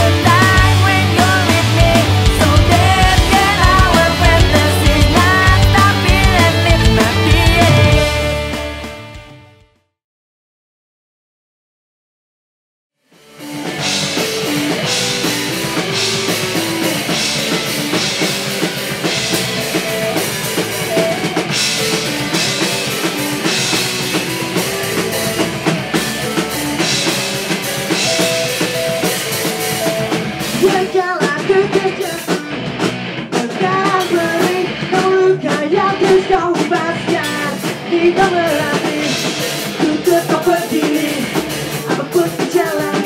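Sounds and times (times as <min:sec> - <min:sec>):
electric guitars: 0:00.0 - 0:09.6, 0:13.2 - 0:43.0
drum kit: 0:00.0 - 0:09.8, 0:13.2 - 0:43.0.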